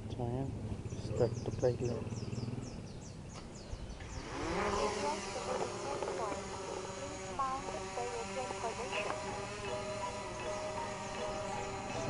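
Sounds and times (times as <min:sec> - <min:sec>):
drone motors whining: 0:00.8 - 0:12.0.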